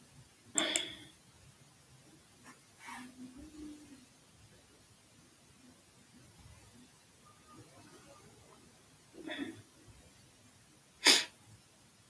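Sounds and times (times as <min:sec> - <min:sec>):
sharp burst of breath: 0:11.0 - 0:11.4.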